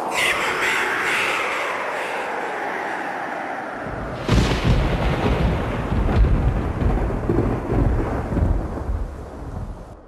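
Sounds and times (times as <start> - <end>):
thunder crack and rumble: 3.8 - 10.0.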